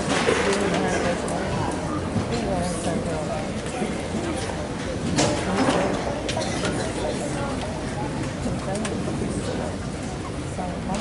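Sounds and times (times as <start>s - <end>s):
audience murmuring: 0.0s - 11.0s
voices close to microphone: 0.0s - 11.0s.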